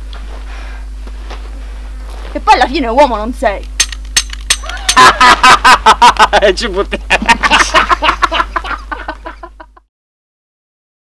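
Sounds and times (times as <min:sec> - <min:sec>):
low steady hum: 0:00.0 - 0:09.9
man laughing hard: 0:04.6 - 0:09.9.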